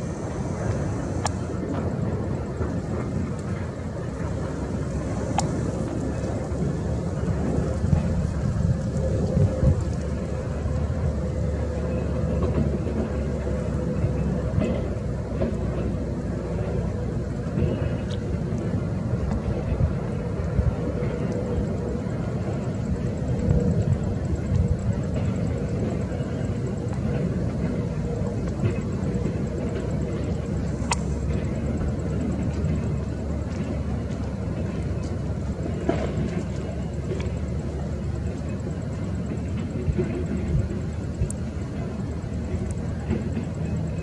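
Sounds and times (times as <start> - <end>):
distant jet engines rumbling: 0.0 - 44.0
wind buffeting microphone: 0.0 - 44.0.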